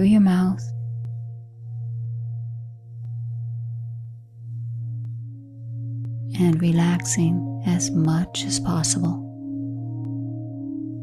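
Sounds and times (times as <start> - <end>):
meditation music drone: 0.0 - 11.0.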